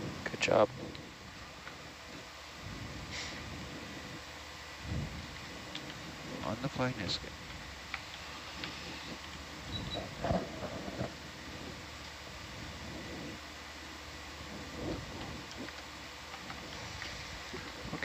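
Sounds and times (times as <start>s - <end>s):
steady hiss and low hum: 0.0s - 18.0s.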